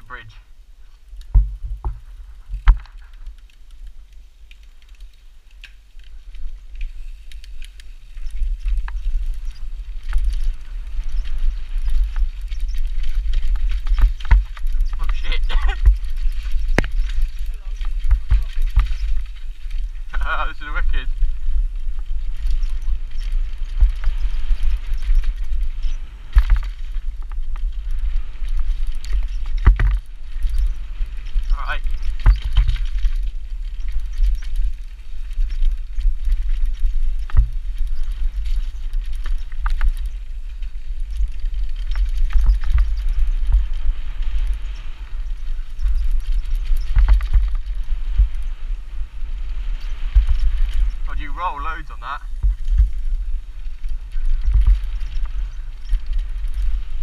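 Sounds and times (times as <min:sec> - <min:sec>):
bike tyre noise: 0:00.0 - 0:57.0
wind rumble on microphone: 0:00.0 - 0:57.0
bike rattling knocks: 0:01.3 - 0:03.1, 0:11.1 - 0:19.6, 0:29.1 - 0:30.7.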